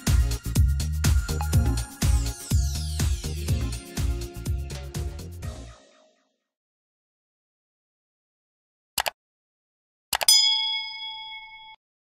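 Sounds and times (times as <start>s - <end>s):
bell-like notification ding: 1.4s - 2.0s, 10.3s - 11.8s.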